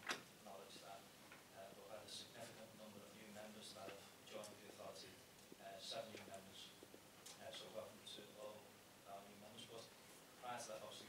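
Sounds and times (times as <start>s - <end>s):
man speaking into microphone: 0.4s - 6.8s, 7.4s - 11.0s.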